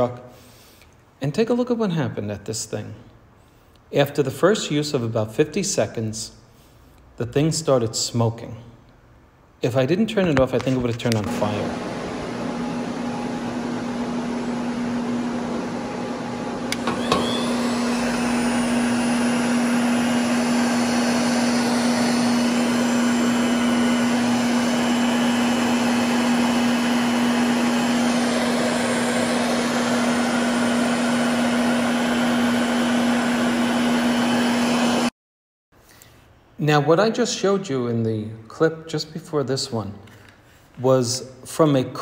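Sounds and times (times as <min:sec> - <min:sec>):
heat gun blower humming: 0:10.7 - 0:35.1
heat gun switch click: 0:16.7 - 0:17.4.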